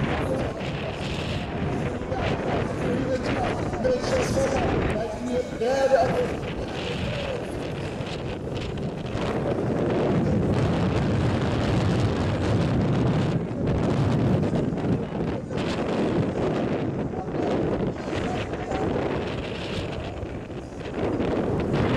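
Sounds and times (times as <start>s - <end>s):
wind buffeting microphone: 0.0s - 21.9s.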